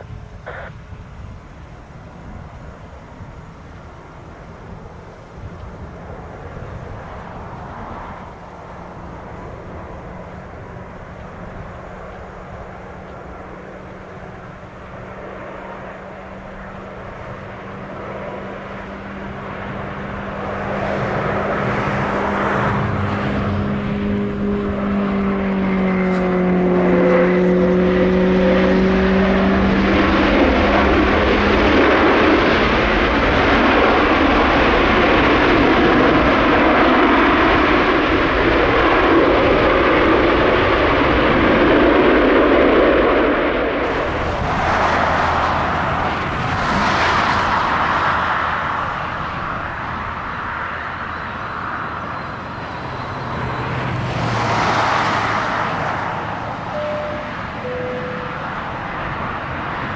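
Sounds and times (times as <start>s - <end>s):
jet engines roaring: 0.0s - 59.9s.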